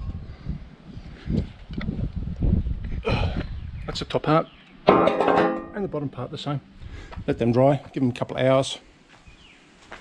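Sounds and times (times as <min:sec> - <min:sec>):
wind buffeting microphone: 0:00.0 - 0:04.1.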